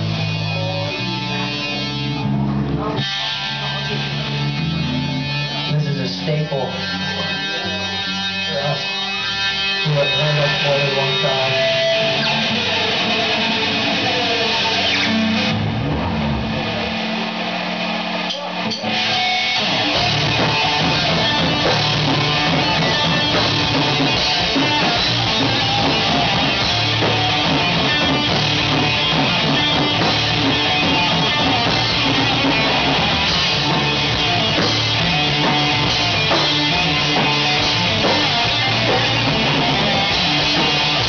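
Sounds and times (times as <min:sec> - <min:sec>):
hard rock band playing: 0:00.0 - 0:41.0.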